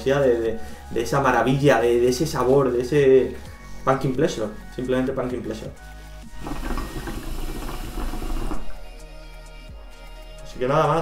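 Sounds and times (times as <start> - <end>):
background music: 0.0 - 11.0
water pipe bubbling: 6.3 - 8.8.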